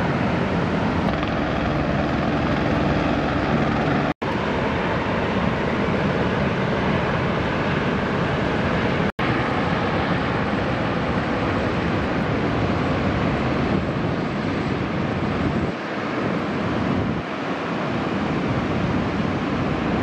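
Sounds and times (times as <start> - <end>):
breaking surf roar: 0.0 - 20.0
wind noise on microphone: 0.0 - 20.0.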